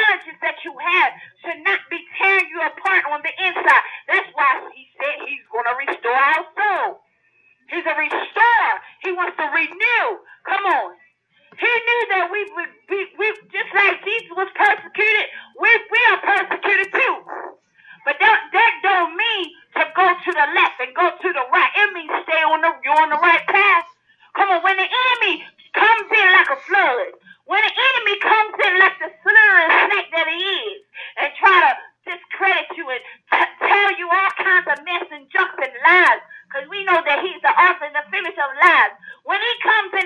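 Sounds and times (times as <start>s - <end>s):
preacher talking: 7.7s - 10.9s, 11.6s - 40.0s.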